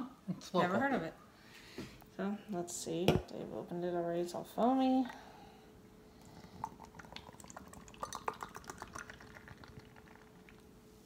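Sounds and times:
faint steady hum: 0:00.0 - 0:11.0
beer pouring into a glass: 0:06.3 - 0:10.7
fizzing: 0:06.6 - 0:10.6.

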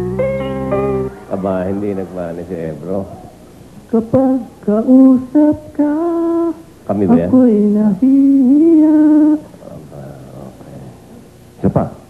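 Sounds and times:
man singing unaccompanied: 0:03.8 - 0:10.7.

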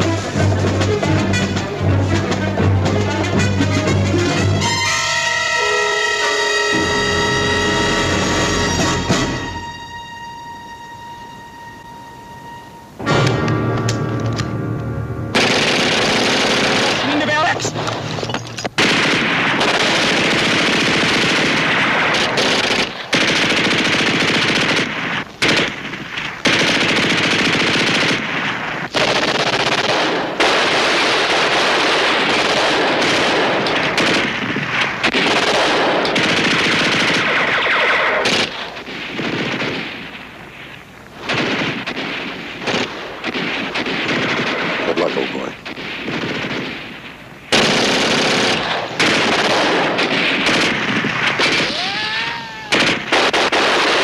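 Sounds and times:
machine-gun and rifle fire: 0:15.3 - 0:18.2, 0:18.8 - 0:40.4, 0:41.2 - 0:52.0, 0:52.7 - 0:54.0.

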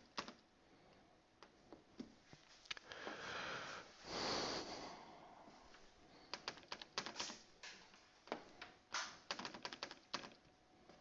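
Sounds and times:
soft hiss: 0:02.0 - 0:06.2.

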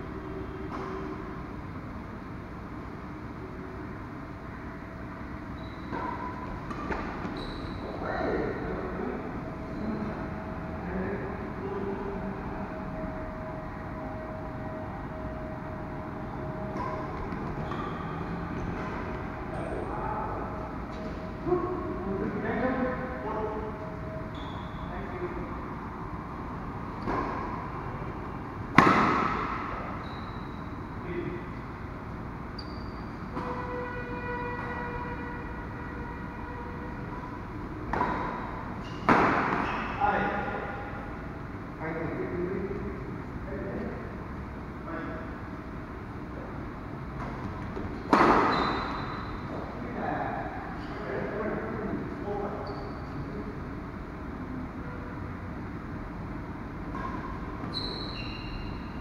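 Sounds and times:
rackets hitting shuttlecock: 0:05.8 - 0:07.4, 0:28.7 - 0:30.0, 0:37.8 - 0:40.0, 0:47.2 - 0:49.0.

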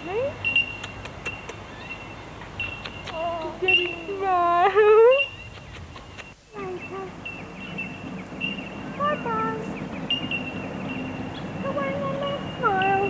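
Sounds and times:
bellbirds calling: 0:00.0 - 0:13.0.

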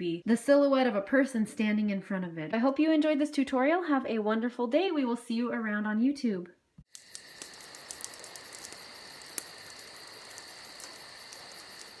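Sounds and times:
crickets chirping: 0:06.9 - 0:12.0.

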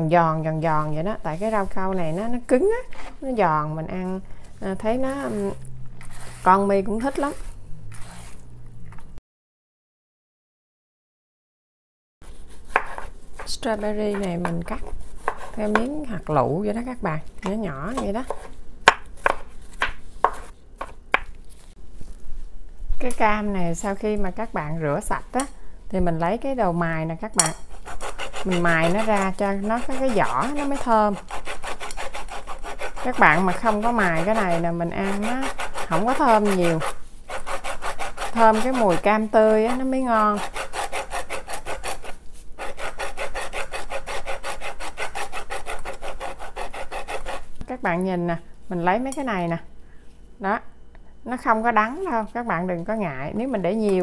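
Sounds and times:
orange rind rasping on zester: 0:05.0 - 0:08.5, 0:27.6 - 0:47.5.

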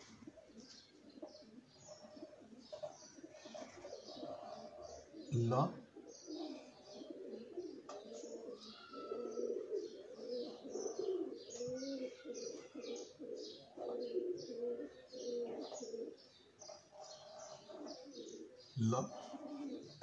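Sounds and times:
low wavering cooing: 0:00.0 - 0:20.0.

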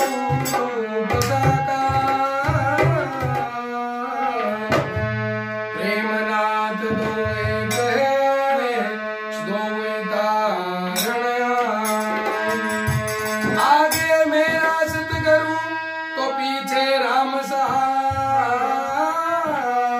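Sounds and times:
harmonium melody: 0:00.0 - 0:19.9
man singing devotional song: 0:00.0 - 0:19.9.

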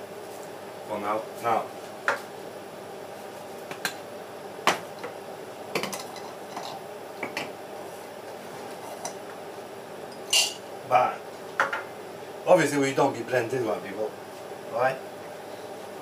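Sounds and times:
kitchenware clinking on counter: 0:10.1 - 0:10.6.

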